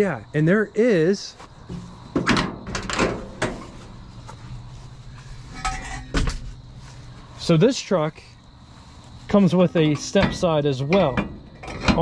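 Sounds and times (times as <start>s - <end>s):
truck door latch clicks and clunks: 2.2s - 3.6s.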